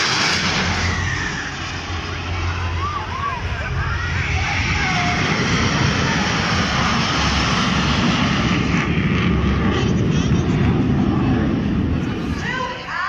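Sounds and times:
jets flying over roaring: 0.0 - 13.0.

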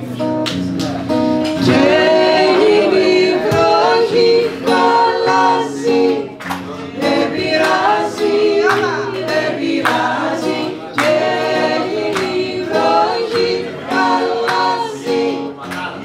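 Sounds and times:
strummed acoustic guitar: 0.0 - 16.0
two women singing: 1.6 - 16.0.

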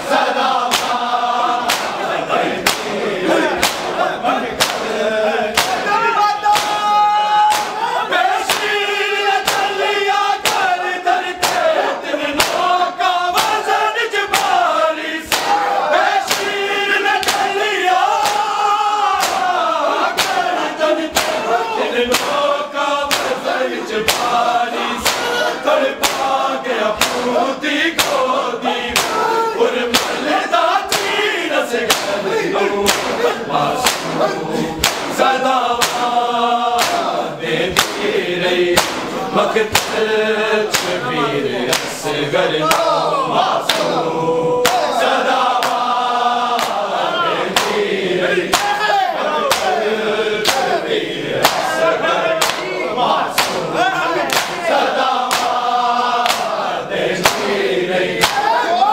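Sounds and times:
men chanting in unison: 0.0 - 58.9
hands slapping bare chests: 0.6 - 8.8, 9.4 - 10.8, 11.4 - 12.8, 13.4 - 13.7, 14.3 - 22.4, 23.0 - 31.2, 31.8 - 40.1, 40.7 - 41.0, 41.7 - 42.0, 43.6 - 44.0, 44.6 - 47.9, 48.5 - 48.9, 49.5 - 49.8, 50.4 - 50.8, 51.4 - 57.6, 58.2 - 58.6.

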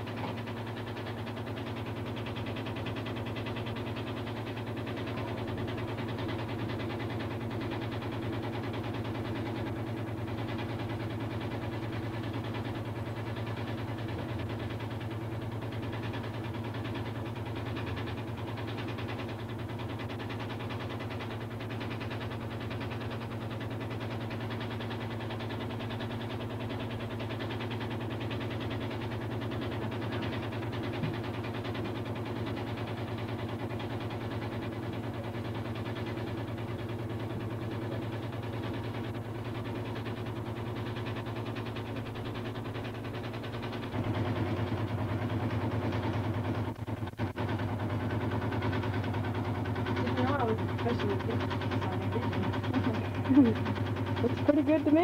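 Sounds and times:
low mechanical hum: 0.0 - 55.0.

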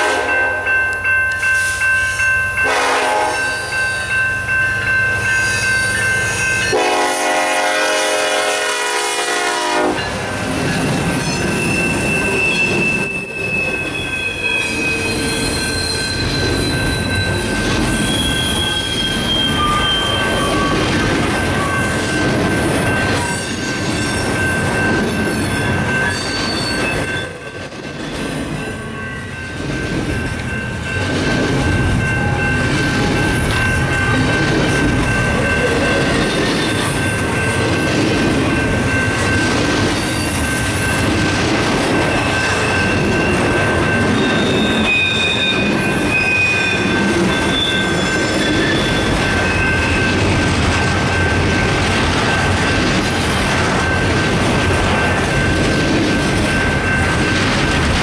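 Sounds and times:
locomotive air horn blasts: 0.0 - 0.4, 2.6 - 3.4, 6.7 - 10.0
wheels rumbling on rail: 0.0 - 58.0
wheels squealing: 11.0 - 21.9.

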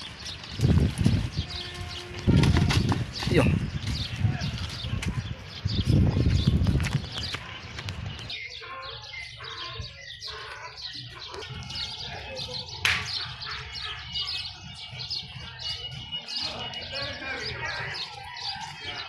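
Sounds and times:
small birds chirping: 0.0 - 19.0.

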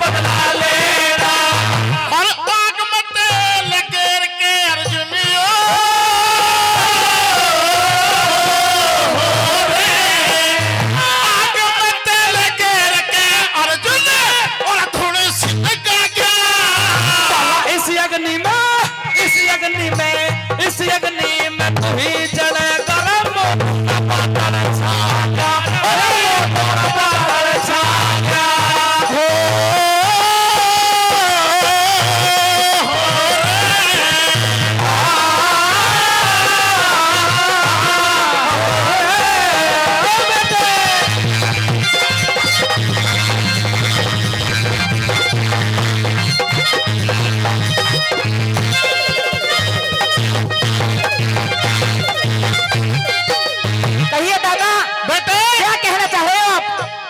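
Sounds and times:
man singing a long high note: 0.0 - 42.0.

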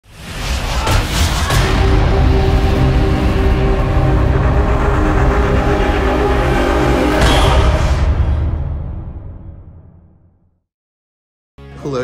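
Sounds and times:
rush of noise: 0.0 - 8.2
logo intro music: 0.1 - 10.1.

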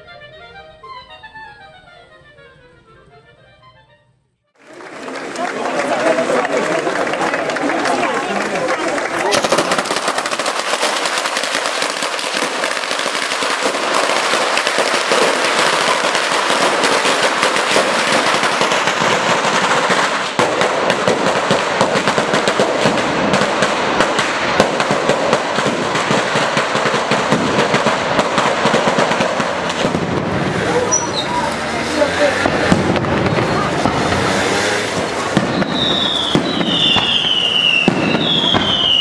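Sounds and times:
firecrackers crackling: 4.6 - 39.0.

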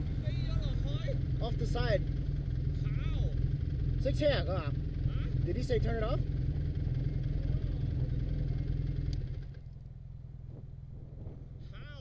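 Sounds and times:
snowmobile engines idling: 0.0 - 12.0.

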